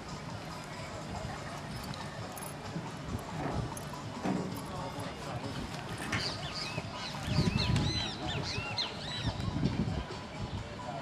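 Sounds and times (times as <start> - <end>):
birds calling harshly: 5.8 - 9.4.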